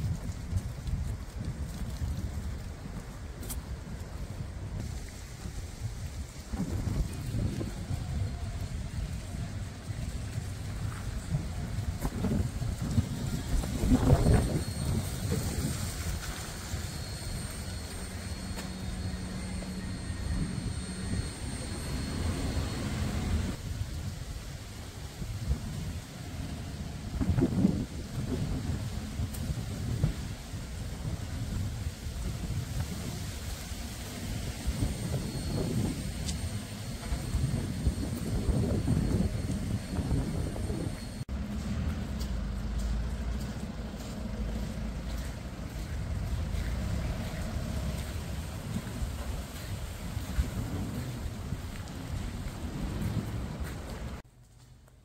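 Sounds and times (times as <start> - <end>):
low rumbling outdoor noise: 0.0 - 55.0
steady low hum: 3.1 - 24.0.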